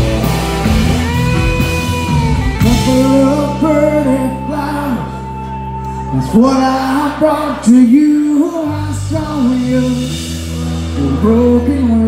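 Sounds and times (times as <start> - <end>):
bass guitar: 0.0 - 12.0
drums: 0.0 - 12.0
electric guitar lead: 0.0 - 12.0.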